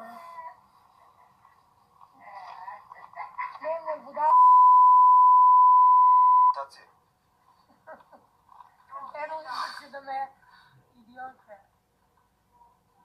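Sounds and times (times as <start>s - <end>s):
censor bleep: 4.3s - 6.6s.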